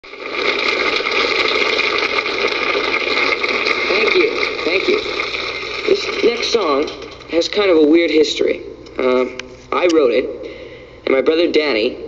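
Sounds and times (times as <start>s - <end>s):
audience applauding: 0.0s - 7.3s.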